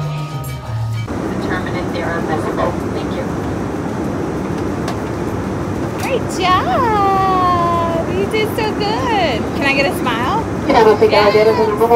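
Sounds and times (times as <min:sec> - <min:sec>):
bar music with bass line: 0:00.0 - 0:01.1
airliner cabin roar: 0:00.7 - 0:11.9
voices: 0:01.1 - 0:04.6, 0:05.8 - 0:11.9.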